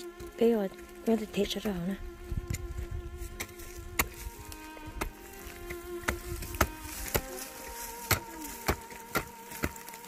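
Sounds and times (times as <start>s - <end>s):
insect buzzing: 0.0s - 10.0s
hoe chopping dry soil: 2.4s - 10.0s.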